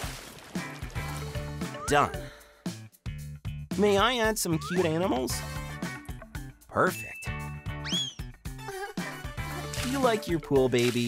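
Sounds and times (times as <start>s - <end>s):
water splashing: 0.0s - 1.0s.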